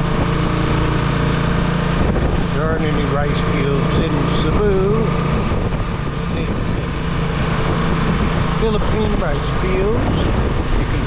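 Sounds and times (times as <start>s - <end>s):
road and wind noise: 0.0s - 11.0s
vehicle engine humming: 0.0s - 11.0s.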